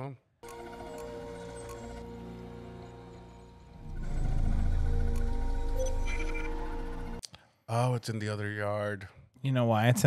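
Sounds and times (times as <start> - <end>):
film score music: 0.4 - 7.6
low dark rumbling: 3.7 - 7.2.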